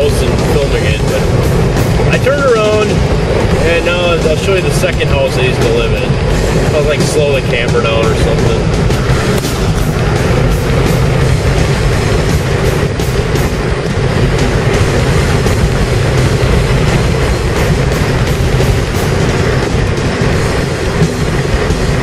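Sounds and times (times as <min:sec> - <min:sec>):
road and wind noise in car: 0:00.0 - 0:22.0.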